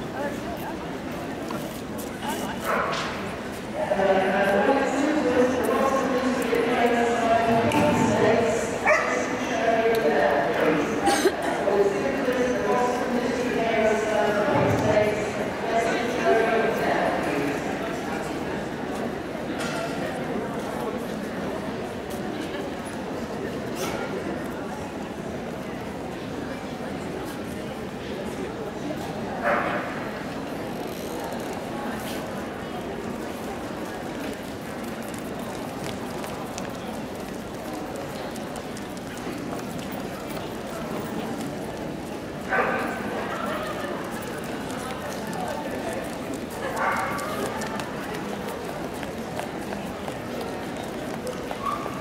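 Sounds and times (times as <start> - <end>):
hubbub of voices: 0.0 - 52.0
people chatting: 0.0 - 52.0
dog barking: 8.8 - 9.2.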